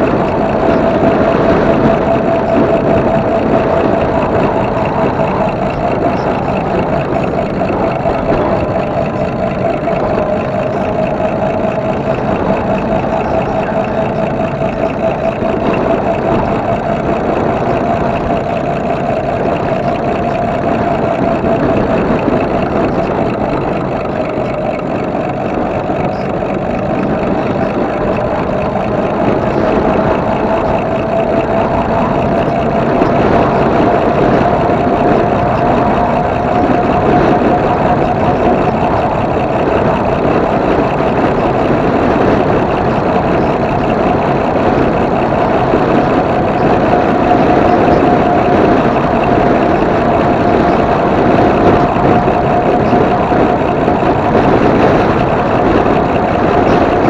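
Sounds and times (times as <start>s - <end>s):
electric bike motor whine: 0.0s - 57.0s
wind and tyre noise: 0.0s - 57.0s.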